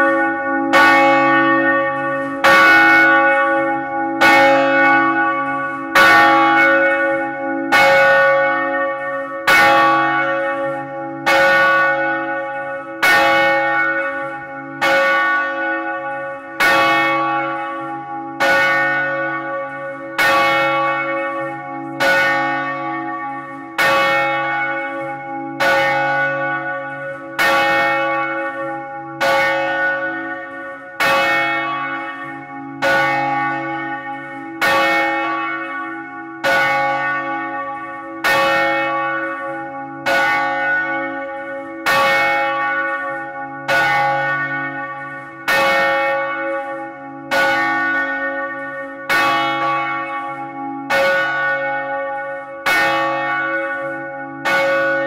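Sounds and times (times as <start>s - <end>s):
large church bell ringing: 0.0s - 55.0s.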